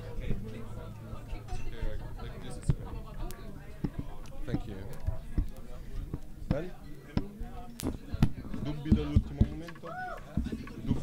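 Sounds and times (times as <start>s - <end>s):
low indistinct chatter: 0.0s - 11.0s.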